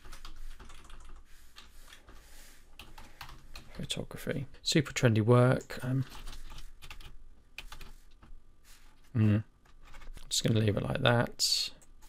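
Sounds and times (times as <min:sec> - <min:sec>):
typing on keyboard: 0:00.0 - 0:01.2, 0:06.0 - 0:07.9.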